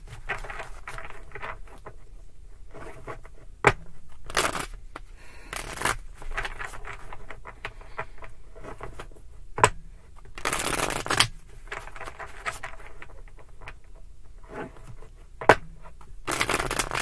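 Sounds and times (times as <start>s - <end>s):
cards shuffling: 0.0s - 2.0s, 2.7s - 9.2s, 10.3s - 13.4s, 16.3s - 17.0s
cards sweeping: 4.2s - 8.3s.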